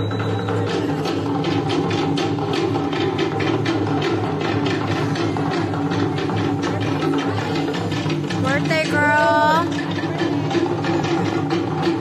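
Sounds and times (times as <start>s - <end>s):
music with fast percussion beat: 0.0s - 12.0s.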